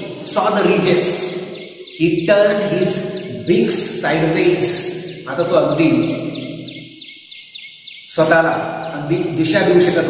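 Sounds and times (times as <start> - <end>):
man's voice: 0.0 - 6.7, 8.1 - 10.0
small birds chirping: 0.0 - 10.0.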